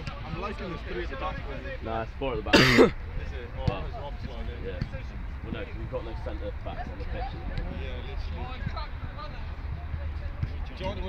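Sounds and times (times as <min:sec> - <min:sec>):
person coughing: 0:02.5 - 0:03.0.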